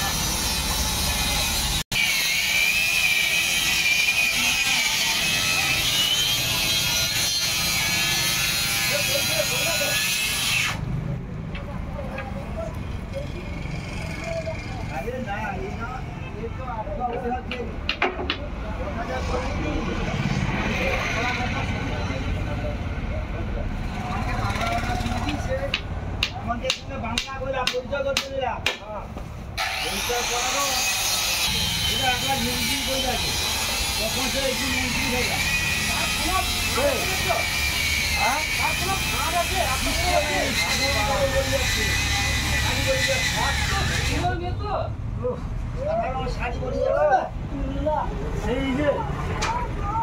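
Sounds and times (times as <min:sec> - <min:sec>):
indistinct voices talking: 0:00.0 - 0:50.0.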